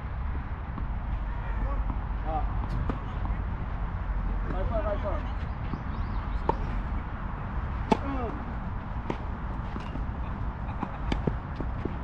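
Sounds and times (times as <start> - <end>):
tennis ball bouncing: 6.4 - 6.9, 7.6 - 12.0
rackets striking tennis ball: 9.0 - 12.0.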